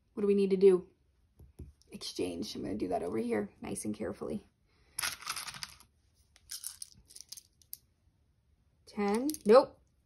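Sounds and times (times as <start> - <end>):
small tiles clattering in box: 5.0 - 5.8, 6.5 - 7.8.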